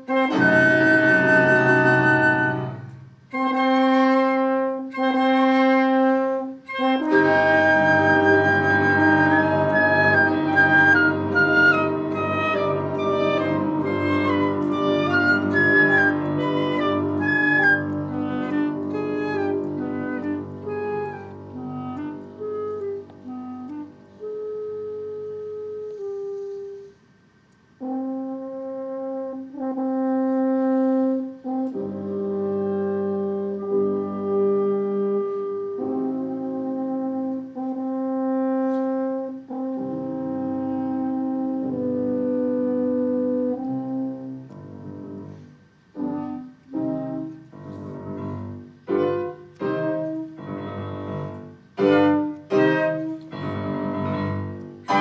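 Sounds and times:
chamber group playing classical music: 0.0s - 55.0s.

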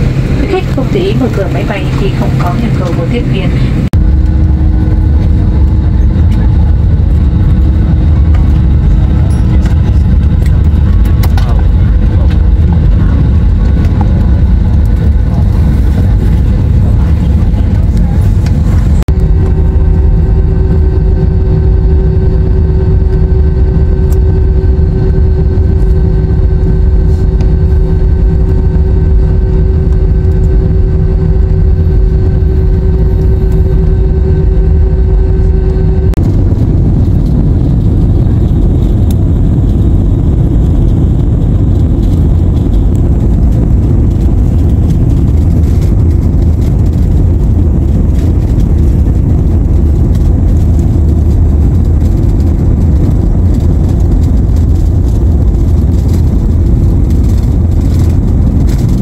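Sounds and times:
jet engines rumbling in cabin: 0.0s - 59.0s
steady cabin hum: 0.0s - 59.0s.

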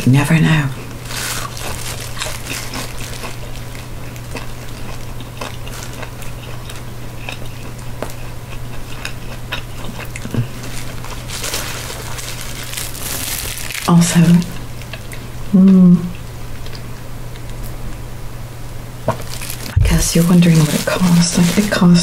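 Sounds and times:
steady low hum: 0.0s - 22.0s
chewing crunchy spring roll: 0.9s - 15.3s, 19.1s - 21.9s.

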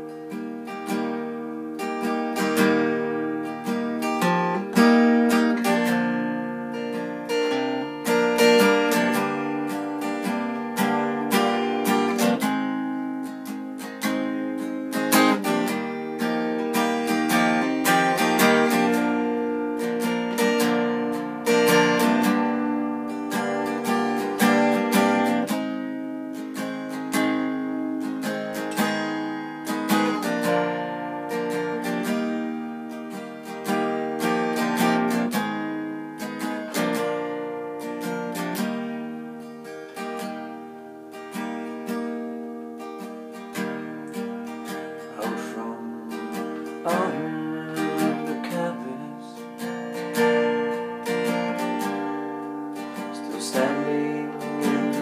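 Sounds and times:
acoustic guitar strummed chords: 0.0s - 55.0s.

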